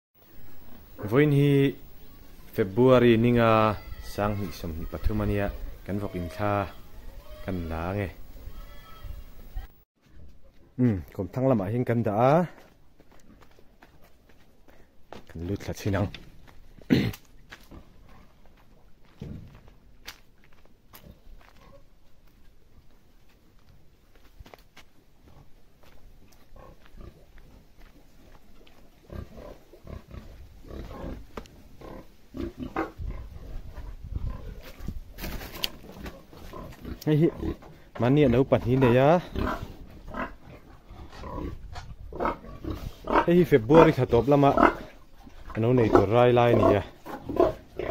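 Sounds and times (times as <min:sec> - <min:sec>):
person speaking: 0:00.3 - 0:09.8, 0:10.7 - 0:12.6
footsteps on earth path: 0:12.0 - 0:32.5, 0:33.8 - 0:43.9
pig grunting: 0:29.1 - 0:35.0, 0:35.6 - 0:47.9.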